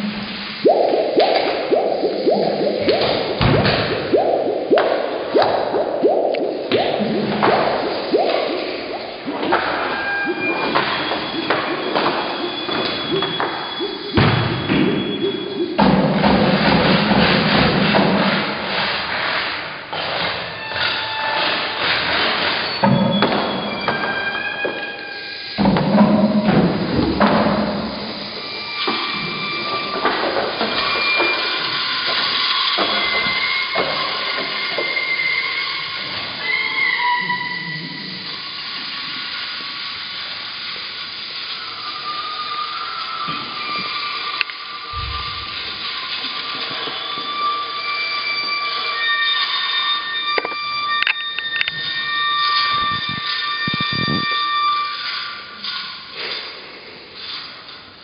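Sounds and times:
whistle-like tones: 0:00.0 - 0:16.4, 0:21.8 - 0:26.6, 0:41.4 - 0:55.6.

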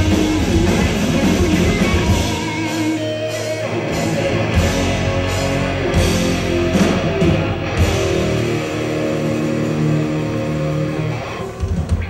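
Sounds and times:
electric guitars ringing chord: 0:00.0 - 0:11.6.

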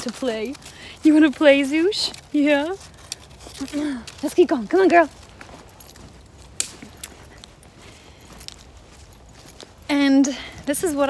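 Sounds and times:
footsteps on snow over leaves: 0:00.0 - 0:11.0.

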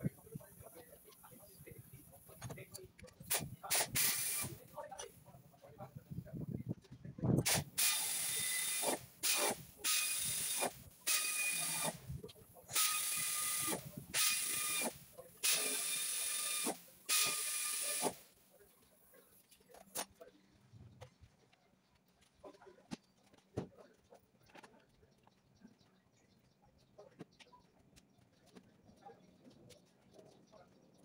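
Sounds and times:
air ratchet hissing bursts: 0:03.2 - 0:04.6, 0:07.4 - 0:12.0, 0:12.7 - 0:18.2.

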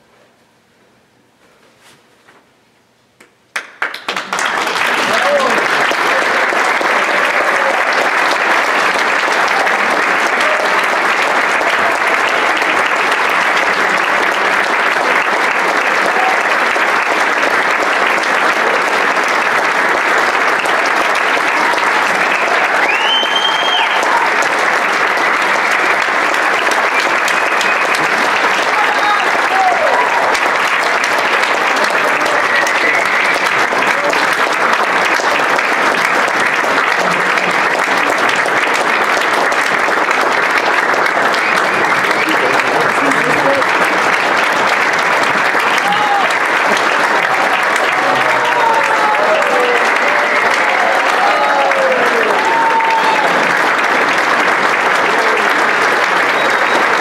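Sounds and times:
audience applauding: 0:03.5 - 0:57.0.

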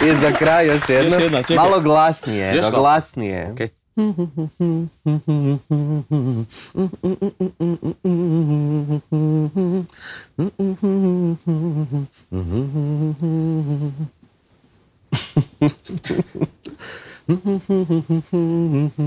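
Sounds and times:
man humming: 0:03.9 - 0:14.2, 0:15.2 - 0:19.0.

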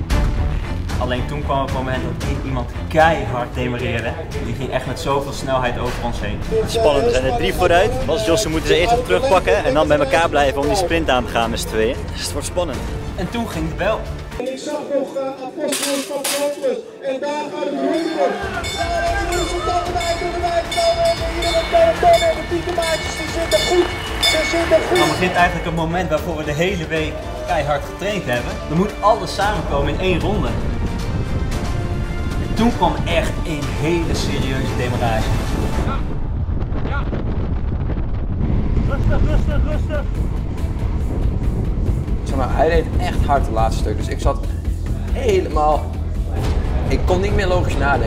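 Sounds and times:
announcer over loudspeaker: 0:17.1 - 0:25.9
low rumble: 0:29.4 - 0:45.2, 0:45.9 - 0:48.0
wind buffeting microphone: 0:29.5 - 0:44.1.

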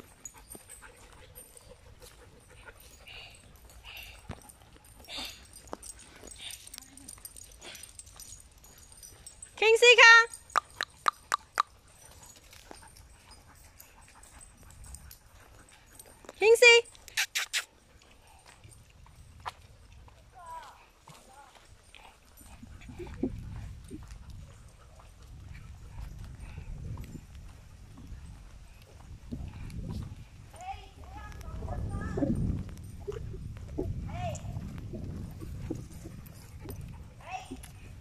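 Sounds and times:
low rumble of movement: 0:21.8 - 0:38.0.

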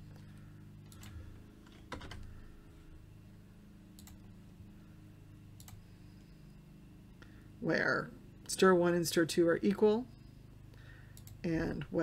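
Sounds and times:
faint low hum: 0:00.0 - 0:12.0
keyboard keystrokes: 0:04.0 - 0:04.2.

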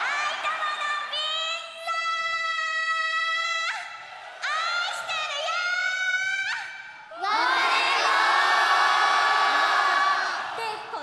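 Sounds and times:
concert audience shouting in unison: 0:07.2 - 0:11.0.

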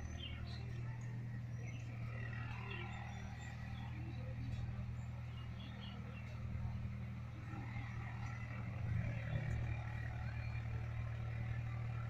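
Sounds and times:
faint bird chirps: 0:00.0 - 0:06.8.

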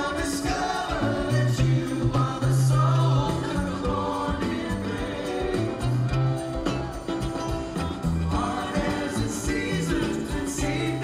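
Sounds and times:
backing singers singing harmonies: 0:00.0 - 0:06.6, 0:08.2 - 0:11.0
live rock band playing: 0:00.0 - 0:11.0.

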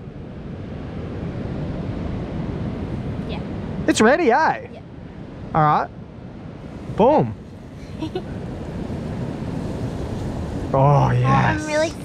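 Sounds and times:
ocean surf washing on beach: 0:00.0 - 0:12.0
wind buffeting microphone: 0:00.0 - 0:12.0.

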